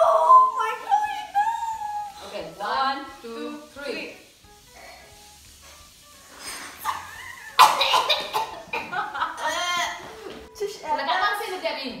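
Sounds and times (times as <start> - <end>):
girls laughing loudly: 6.8 - 10.1
girls coughing: 6.9 - 10.0.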